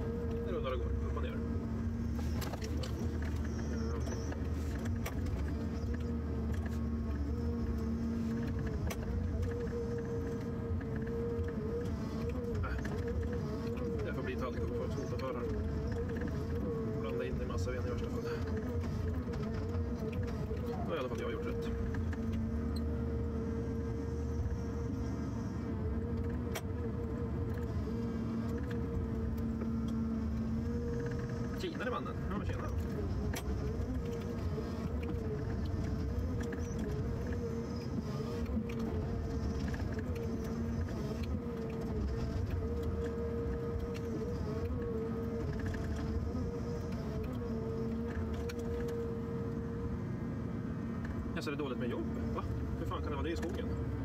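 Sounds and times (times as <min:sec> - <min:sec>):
harvester engine rumble: 0:00.0 - 0:54.0.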